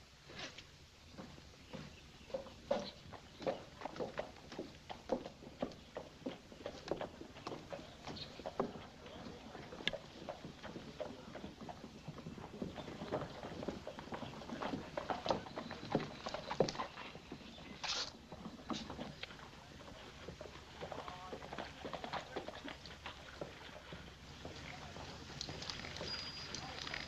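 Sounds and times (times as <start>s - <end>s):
horse hooves clopping on street: 1.1s - 27.0s.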